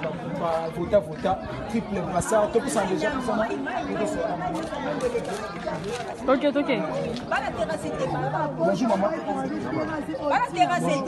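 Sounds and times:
overlapping chatter of people: 0:00.0 - 0:11.0.

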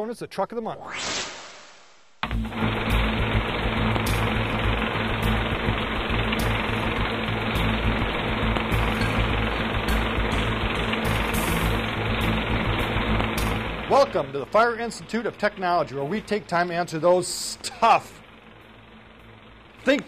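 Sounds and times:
film projector rattle: 0:02.4 - 0:20.0.

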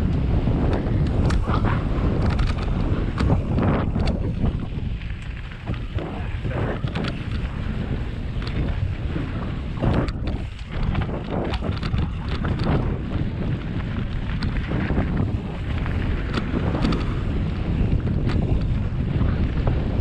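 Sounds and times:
bike clicks and rattles: 0:00.0 - 0:20.0
tyres rumbling on dirt: 0:00.0 - 0:20.0
wind buffeting microphone: 0:00.0 - 0:20.0.

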